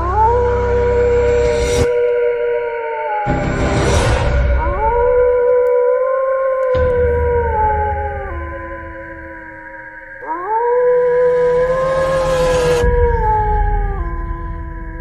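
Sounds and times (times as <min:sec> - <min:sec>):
eerie howling wail: 0:00.0 - 0:15.0
high-pitched drone: 0:06.8 - 0:15.0.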